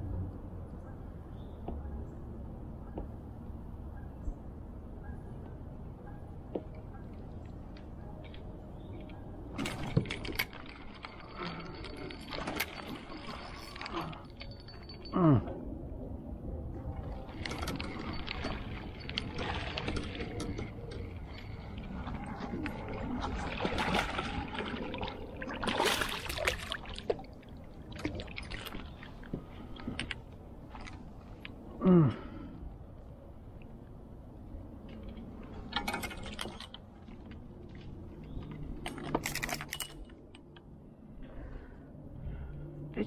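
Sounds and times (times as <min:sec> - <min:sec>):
water splashing and sloshing: 0:06.0 - 0:31.8, 0:32.4 - 0:42.5.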